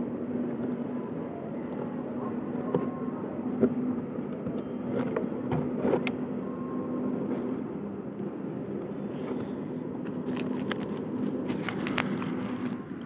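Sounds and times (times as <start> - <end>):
faint constant hum: 0.0 - 13.0.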